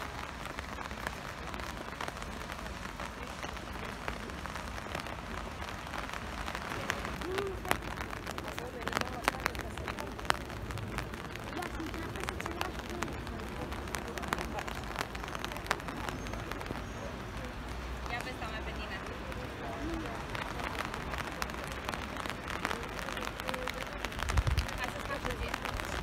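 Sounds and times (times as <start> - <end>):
distant people talking: 0.0 - 26.0
light rain: 0.0 - 26.0
wind rumble on microphone: 24.0 - 26.0.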